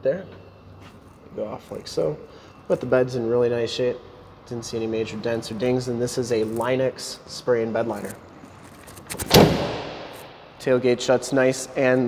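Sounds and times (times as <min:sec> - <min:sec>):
tailgate latch clicks: 0:09.2 - 0:09.8
tailgate slamming shut: 0:09.2 - 0:10.3.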